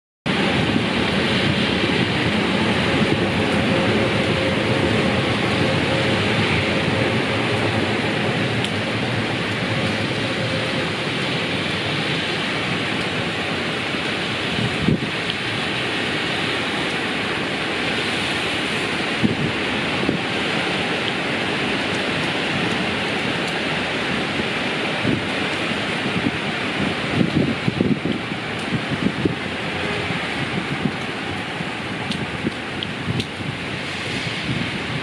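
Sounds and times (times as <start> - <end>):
rain on wooden deck and glass: 0.3 - 35.0.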